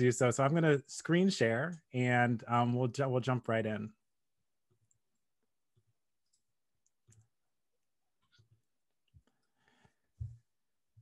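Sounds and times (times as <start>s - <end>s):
computer mouse clicks: 6.2s - 7.3s.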